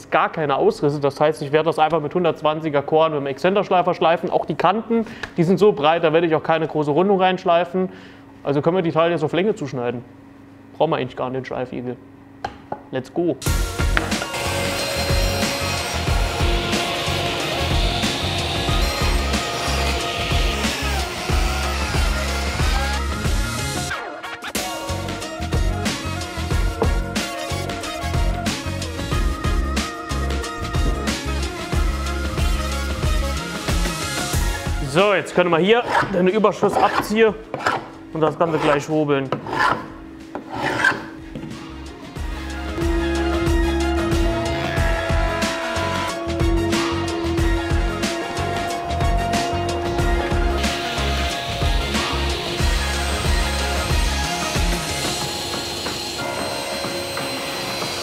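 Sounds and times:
table saw cutting wood: 13.4s - 23.9s, 35.8s - 41.2s, 42.2s - 58.0s
background music with steady beat: 13.4s - 35.2s, 41.1s - 58.0s
hand scraper rasping on wood: 35.8s - 37.9s, 38.5s - 41.1s, 42.8s - 58.0s.

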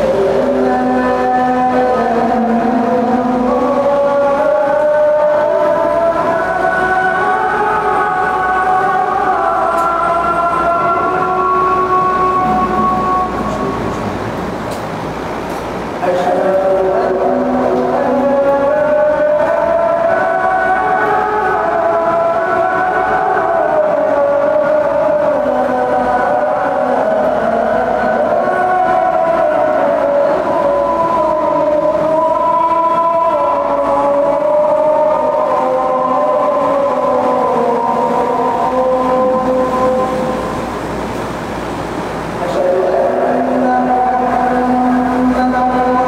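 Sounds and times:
person chanting long notes: 0.0s - 14.8s, 16.0s - 46.0s.

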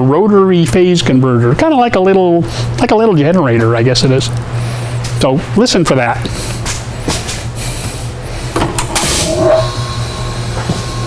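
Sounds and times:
low machine hum: 0.0s - 11.0s
high whine tones: 8.6s - 11.0s.

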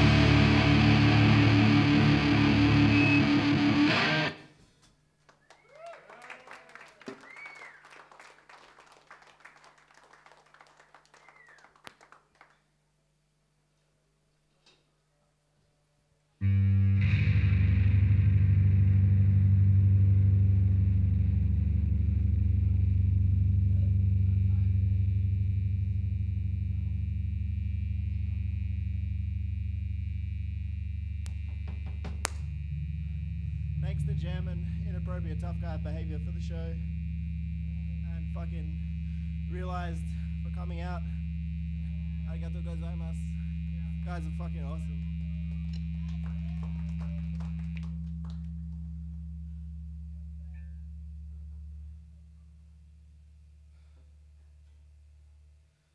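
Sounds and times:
faint high whine: 0.0s - 4.6s, 16.5s - 55.9s
guitar amplifier drone: 0.0s - 4.6s, 16.4s - 54.8s
low mains hum: 0.0s - 55.9s
sharp pop: 32.0s - 32.5s.

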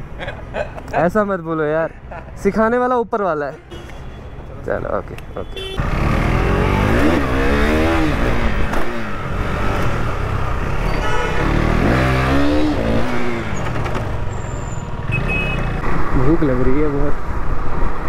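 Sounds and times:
road noise: 0.0s - 18.0s
motorcycle engine accelerating: 5.8s - 14.2s.

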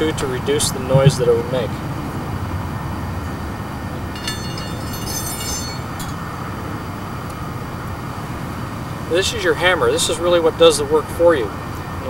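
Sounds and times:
low outdoor rumble: 0.0s - 12.0s
light metallic jingle: 4.1s - 6.6s.

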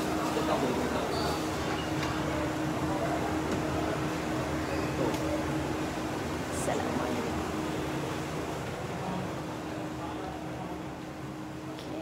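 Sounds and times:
ventilation hum: 0.0s - 12.0s.

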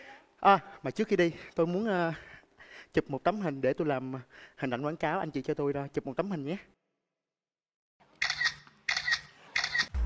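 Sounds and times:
camera shutter clicks: 8.2s - 10.0s.

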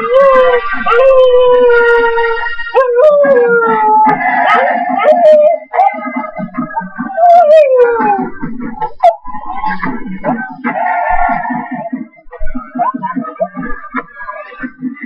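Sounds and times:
husky howling: 0.0s - 9.3s.

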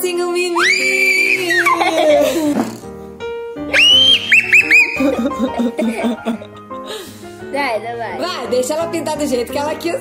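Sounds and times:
background music: 0.0s - 10.0s
child squealing: 0.6s - 2.5s, 3.7s - 5.2s.

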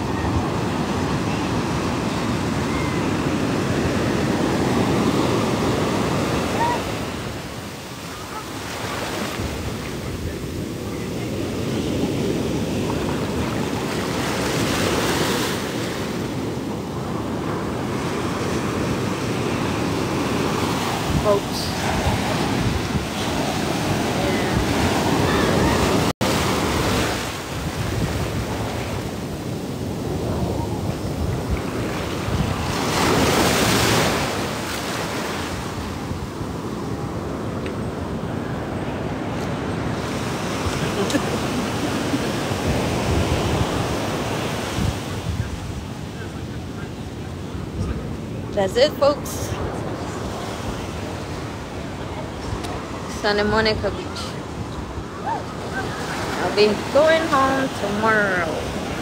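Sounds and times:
ocean surf breaking: 0.0s - 59.0s
wind buffeting microphone: 18.4s - 34.6s, 35.6s - 53.0s.

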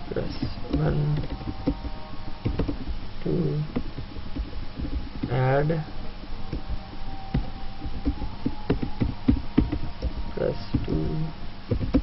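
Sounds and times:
low background noise: 0.0s - 12.0s
computer keyboard key clicks: 7.3s - 11.0s.

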